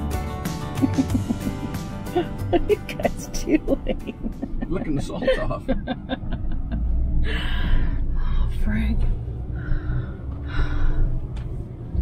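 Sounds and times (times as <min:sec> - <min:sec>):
engine and road rumble: 0:00.0 - 0:12.0
person gasping laughs: 0:00.8 - 0:02.4.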